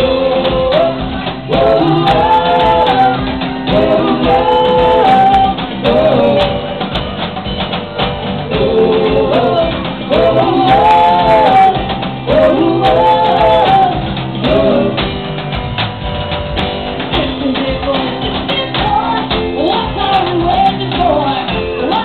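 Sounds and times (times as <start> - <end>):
person singing: 0.0 - 7.2, 8.4 - 15.2, 17.1 - 22.0
drums: 0.0 - 22.0
piano: 0.0 - 22.0.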